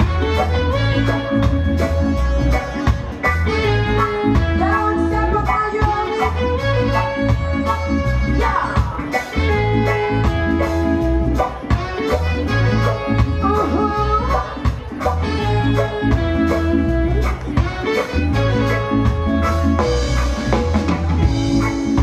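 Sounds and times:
live reggae band playing: 0:00.0 - 0:22.0.

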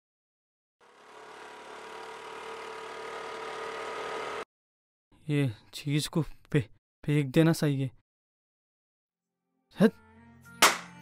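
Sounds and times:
vehicle engine running: 0:00.8 - 0:04.4.

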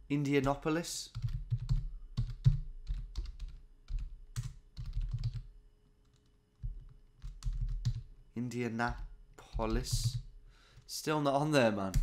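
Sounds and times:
typing on computer keyboard: 0:00.4 - 0:05.5, 0:06.1 - 0:08.1.

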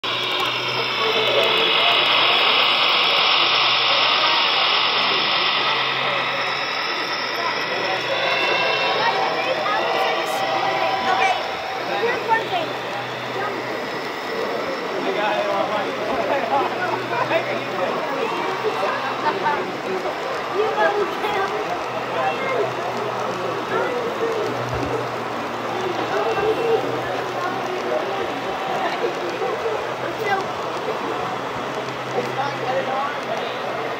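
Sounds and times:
steady low hum: 0:00.0 - 0:19.2
crowd chatter: 0:00.0 - 0:33.9
model train wheels on track: 0:00.0 - 0:33.9.

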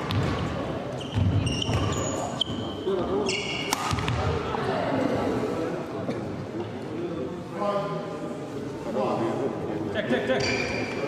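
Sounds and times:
court shoes squeaking: 0:00.0 - 0:04.3, 0:10.4 - 0:11.0
racket striking shuttlecock: 0:03.6 - 0:04.2.

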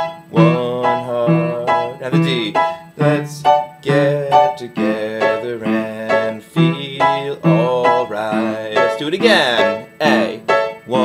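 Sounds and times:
upright piano reggae chords: 0:00.0 - 0:11.0.

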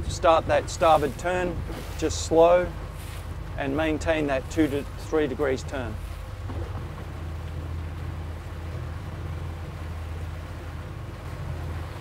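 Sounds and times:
outboard engine humming: 0:00.0 - 0:12.0.

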